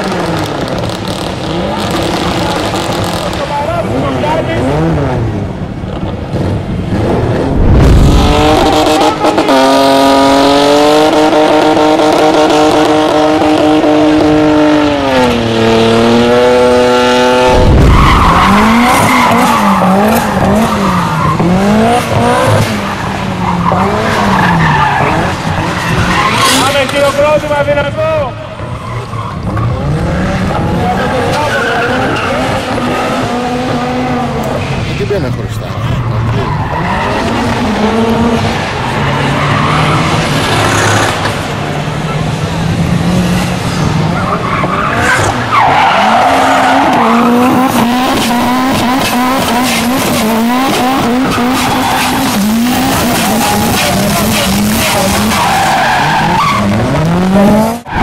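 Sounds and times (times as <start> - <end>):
car engine revving: 0.0 - 58.0
tyres squealing and skidding: 16.2 - 42.6, 43.3 - 58.0.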